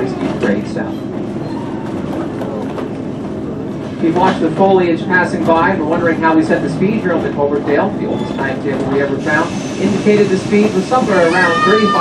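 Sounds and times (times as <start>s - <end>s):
wheels and brakes clicking and squeaking: 0.0s - 3.1s, 5.3s - 12.0s
train coach rumble: 0.0s - 12.0s.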